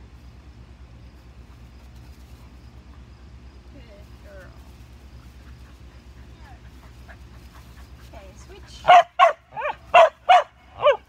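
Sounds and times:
dog barking: 0:08.8 - 0:11.0.

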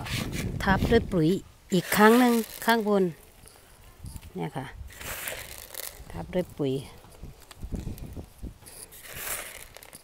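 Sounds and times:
pellets knocking in plastic basin: 0:01.8 - 0:02.9, 0:04.9 - 0:06.0, 0:09.0 - 0:10.0.

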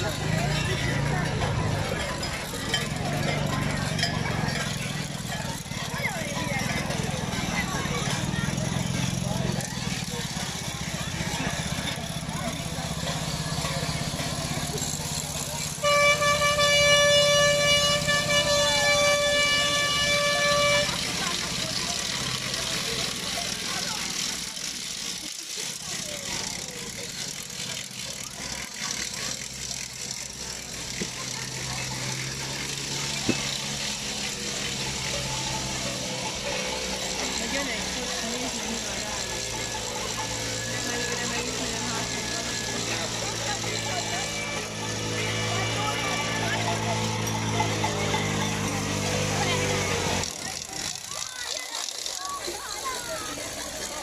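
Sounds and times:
crowd chatter: 0:00.0 - 0:54.0
horn blowing long note: 0:15.8 - 0:21.1.

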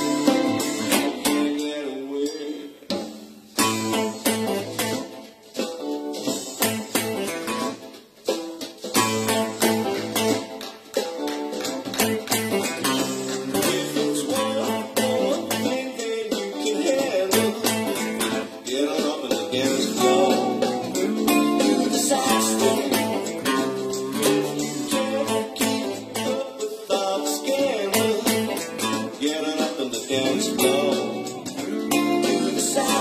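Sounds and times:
funk soul band music: 0:00.0 - 0:33.0
guitar playing along: 0:00.0 - 0:33.0.

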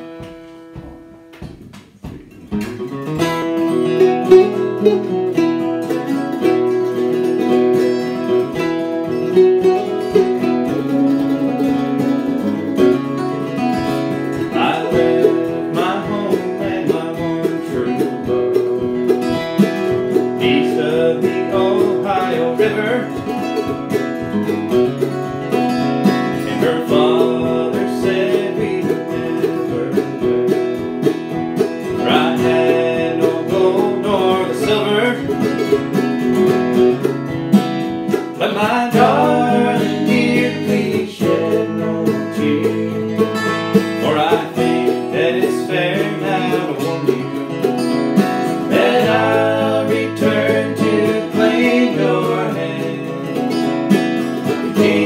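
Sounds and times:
acoustic guitar: 0:00.0 - 0:55.0
mandolin: 0:00.0 - 0:55.0
man singing: 0:14.4 - 0:18.6, 0:20.2 - 0:23.4, 0:26.3 - 0:30.6, 0:31.8 - 0:35.8, 0:38.3 - 0:47.8, 0:48.4 - 0:53.6, 0:54.4 - 0:55.0.

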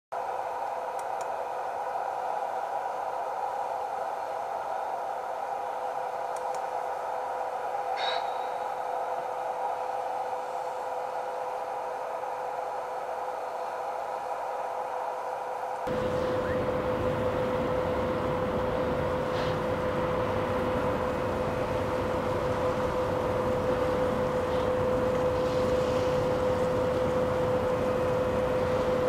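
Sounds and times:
constant hum tone: 0:00.2 - 0:29.0
steady hiss: 0:18.9 - 0:29.0.

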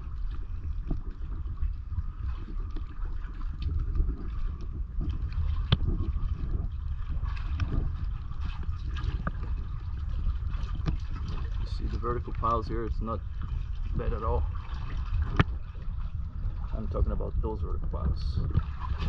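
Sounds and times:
low rumble: 0:00.0 - 0:19.0
water lapping against seawall: 0:00.0 - 0:19.0
man speaking: 0:16.8 - 0:18.4.

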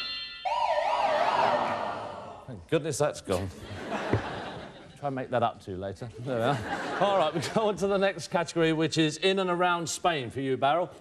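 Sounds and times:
warbling electronic siren tone: 0:00.0 - 0:02.3.

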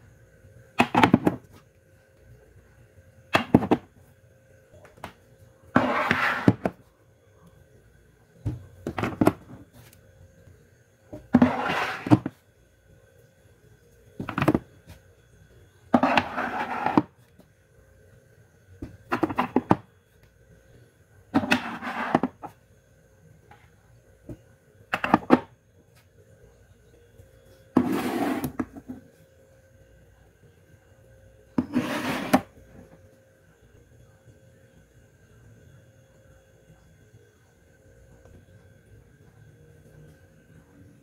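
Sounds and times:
cans scraping on shelf: 0:05.7 - 0:06.8, 0:11.2 - 0:12.3, 0:15.9 - 0:17.1, 0:21.4 - 0:22.5, 0:27.8 - 0:28.9, 0:31.6 - 0:32.5.

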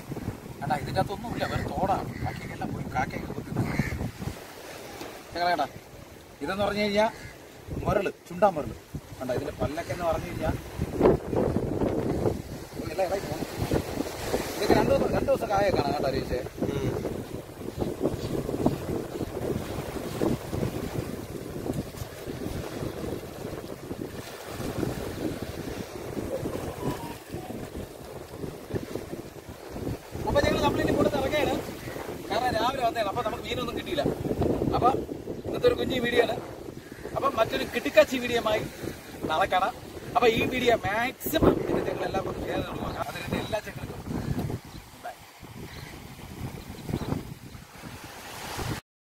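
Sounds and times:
small waves lapping: 0:00.0 - 0:48.8
wind buffeting microphone: 0:00.0 - 0:48.8.

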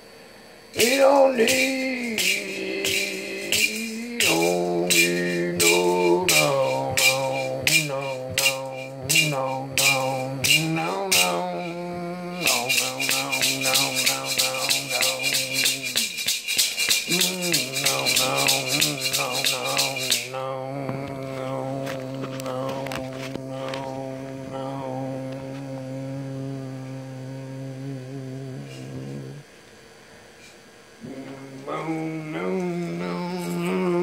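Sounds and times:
hand shaker rhythm: 0:00.8 - 0:25.8, 0:31.0 - 0:34.0
man chanting low note: 0:01.4 - 0:16.1, 0:17.1 - 0:29.4, 0:31.0 - 0:34.0.

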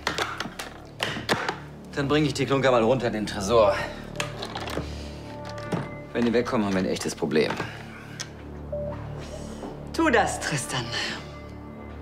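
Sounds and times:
case handling clicks: 0:00.0 - 0:01.7
soft background music: 0:00.0 - 0:12.0.

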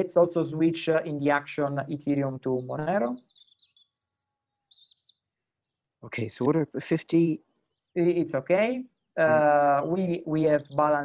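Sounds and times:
bird chirping trills: 0:00.0 - 0:11.0.

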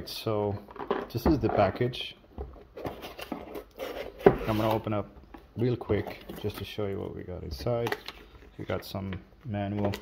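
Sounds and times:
cardboard parcel rubbing and scraping: 0:03.0 - 0:04.9.

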